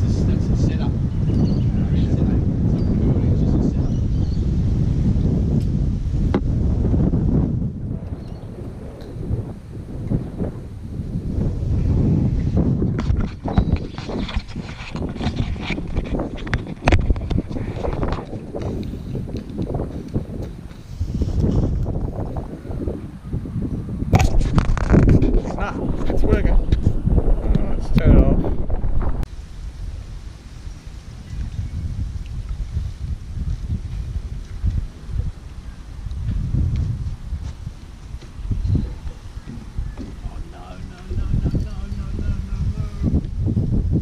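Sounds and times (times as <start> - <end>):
wind buffeting microphone: 0.0 - 44.0
camera rubbing against fabric: 12.4 - 19.4, 24.2 - 27.0.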